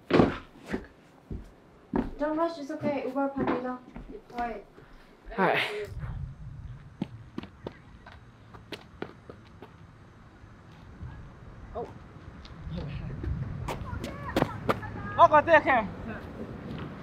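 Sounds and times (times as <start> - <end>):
low rumble: 5.9 - 8.0.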